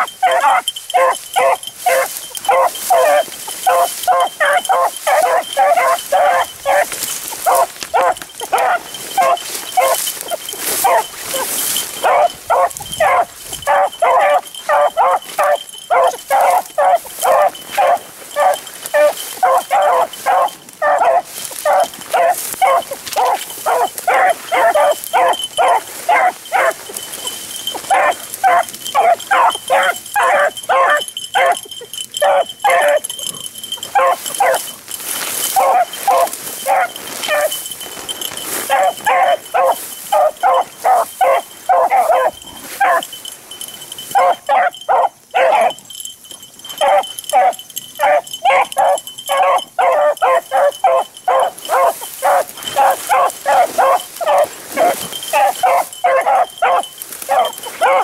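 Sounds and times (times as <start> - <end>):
hounds baying: 0.0 - 58.0.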